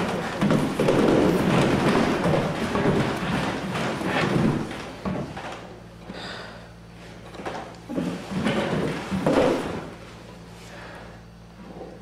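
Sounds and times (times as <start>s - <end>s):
body scraping against wooden walls: 0.0s - 5.7s.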